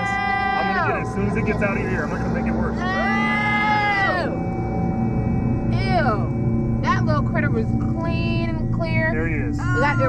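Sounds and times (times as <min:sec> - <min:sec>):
low background music: 0:00.0 - 0:10.0
woman crying out oh: 0:02.8 - 0:04.4.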